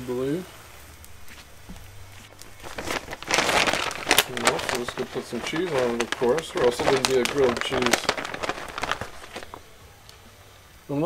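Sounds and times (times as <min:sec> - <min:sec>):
plastic bag crinkling: 0:01.3 - 0:09.8.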